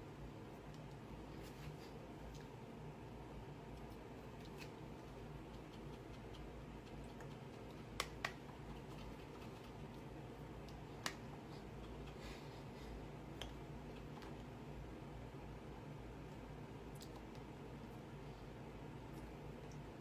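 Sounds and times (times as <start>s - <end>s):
room hum: 0.0s - 20.0s.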